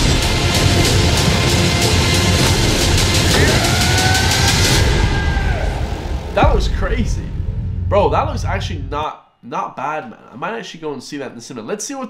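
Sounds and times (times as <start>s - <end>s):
loud dense trailer music: 0.0s - 9.0s.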